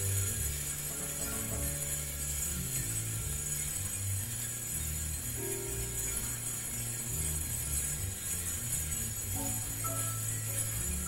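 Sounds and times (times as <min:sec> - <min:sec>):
high shimmer: 0:00.0 - 0:11.0.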